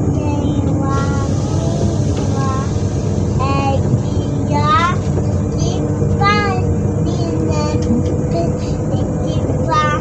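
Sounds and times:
train equipment humming: 0.0s - 10.0s.

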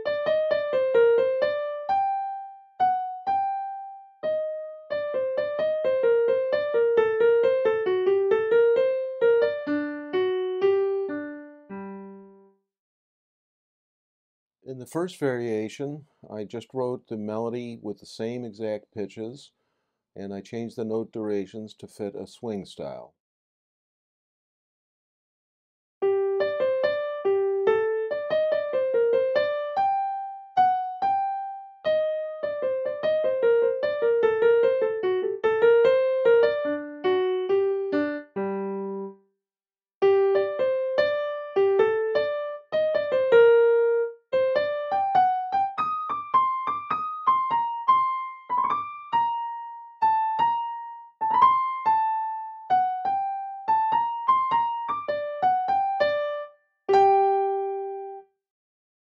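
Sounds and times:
digital piano melody: 0.0s - 12.6s, 26.0s - 39.3s, 40.0s - 58.3s.

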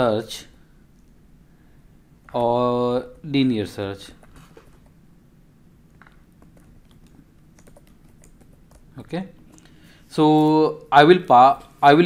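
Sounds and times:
faint keyboard typing: 4.0s - 5.0s, 5.9s - 9.8s.

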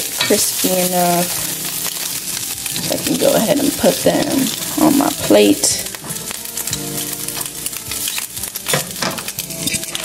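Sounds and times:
potatoes sizzling in frying pan: 0.0s - 10.0s.

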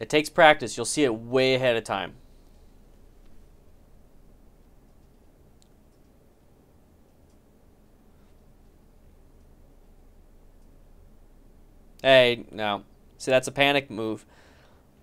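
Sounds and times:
low hum: 0.0s - 15.0s
faint clicks: 4.6s - 6.2s, 7.0s - 7.5s, 10.5s - 10.8s.

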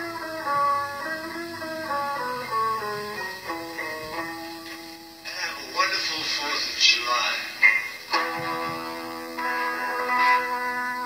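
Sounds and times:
guitar phrases: 0.0s - 11.0s.

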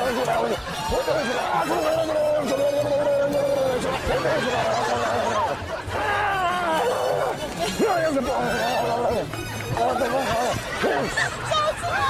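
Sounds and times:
background music: 0.0s - 12.0s
women squealing and calling out: 11.3s - 12.0s.

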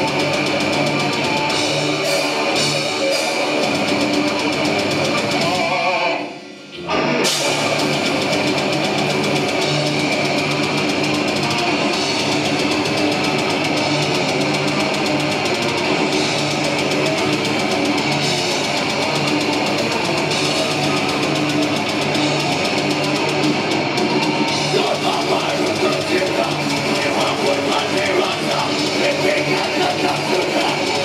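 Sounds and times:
fast drumming and cymbals: 0.0s - 6.0s, 7.2s - 31.0s
distorted guitars and bass: 0.0s - 31.0s.

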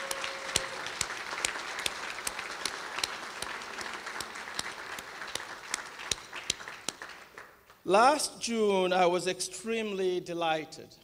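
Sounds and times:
audience applauding: 0.0s - 7.8s
loud single claps: 0.0s - 7.8s.

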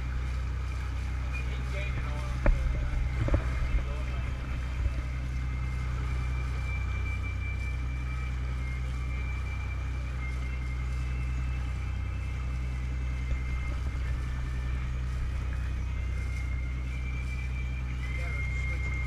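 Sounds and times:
boat engines low drone: 0.0s - 19.0s
water rushing along hull: 0.0s - 19.0s.

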